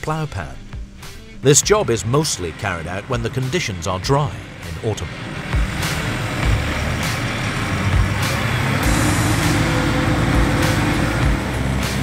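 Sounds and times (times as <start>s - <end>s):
tractor diesel engine under load: 1.4s - 12.0s.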